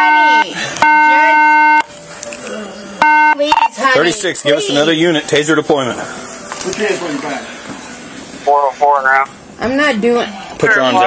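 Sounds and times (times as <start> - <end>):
electronic alert beeping: 0.0 - 2.0, 3.0 - 4.0
faint voice: 2.4 - 3.0.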